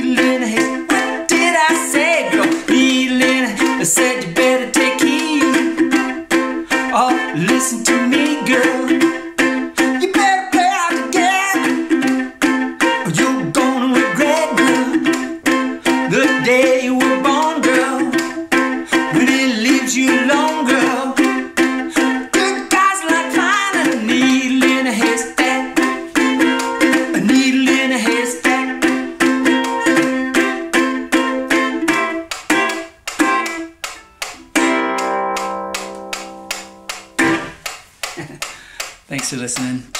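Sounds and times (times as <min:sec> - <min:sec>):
man singing: 0:00.0 - 0:30.1
ukulele strumming chords: 0:00.0 - 0:39.9.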